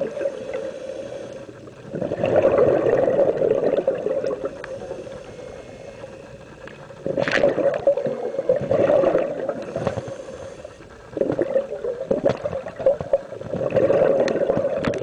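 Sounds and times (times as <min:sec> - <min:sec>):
regulator hiss: 0:00.0 - 0:13.8
exhaled bubbles gurgling: 0:00.0 - 0:15.0.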